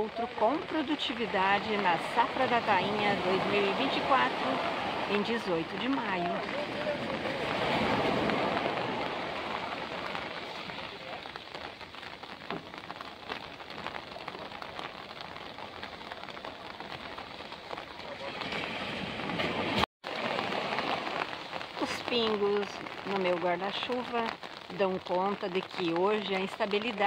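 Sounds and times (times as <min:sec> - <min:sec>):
raindrops hitting an umbrella: 0:00.0 - 0:27.0.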